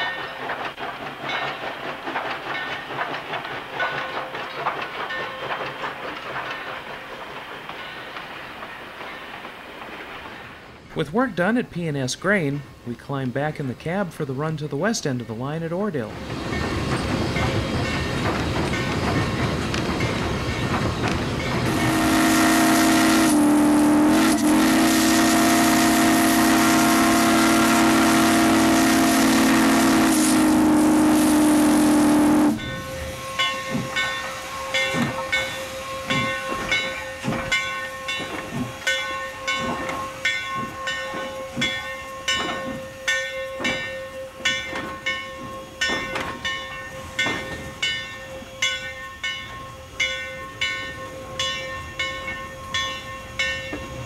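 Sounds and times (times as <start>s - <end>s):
steam whistle blast: 21.7s - 36.3s.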